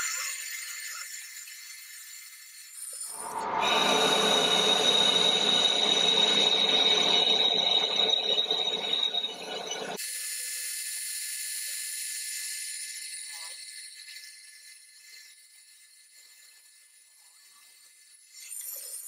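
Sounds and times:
faint high-pitched sound: 3.0s - 10.0s
metal lathe cutting with whine: 3.1s - 10.0s.

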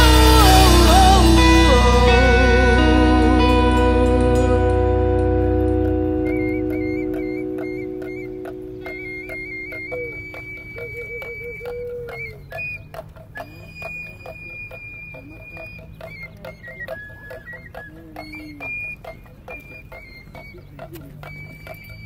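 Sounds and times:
shrill cane flute melody: 0.0s - 22.0s
small hand drum beating: 0.0s - 22.0s.

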